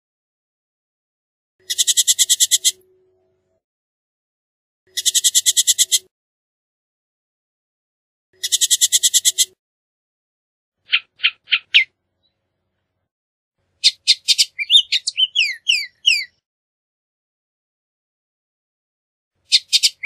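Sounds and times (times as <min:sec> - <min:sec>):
bird chatter call: 0:01.6 - 0:02.8, 0:04.9 - 0:06.1, 0:08.4 - 0:09.6, 0:13.8 - 0:16.4
short bird notes: 0:13.8 - 0:16.4.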